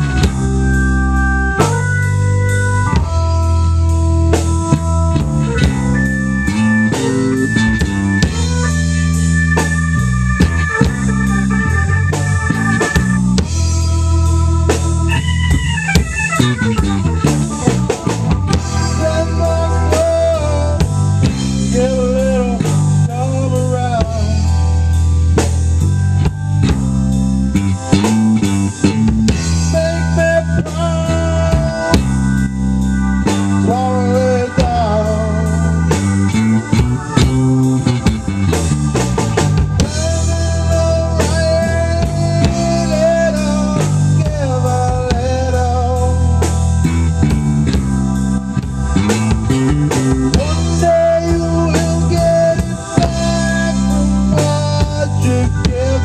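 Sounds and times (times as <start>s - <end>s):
electric bass: 0.0s - 56.0s
organ chords: 0.0s - 56.0s
steady drum beat: 0.0s - 56.0s.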